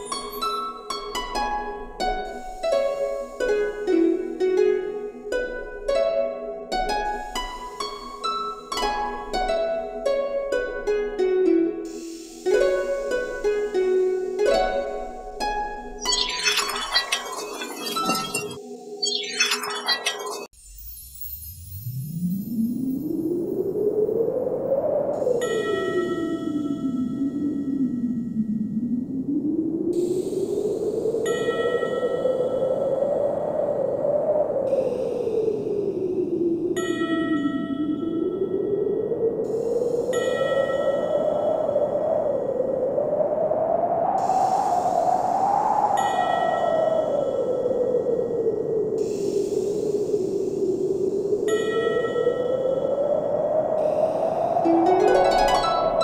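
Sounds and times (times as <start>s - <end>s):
howling wind: 0.0s - 20.5s, 22.2s - 56.0s
bell-like chime: 16.1s - 22.0s.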